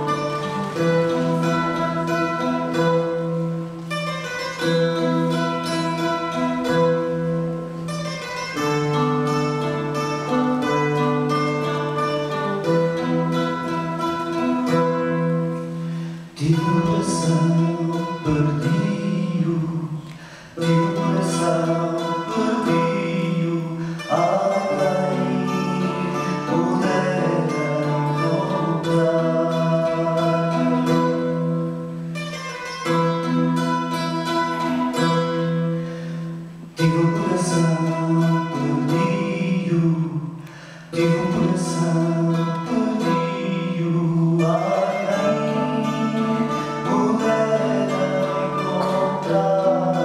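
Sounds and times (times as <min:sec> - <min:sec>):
guitars and mandolins strummed: 0:00.0 - 0:50.0
men singing: 0:16.4 - 0:31.2, 0:36.8 - 0:40.4, 0:41.0 - 0:50.0.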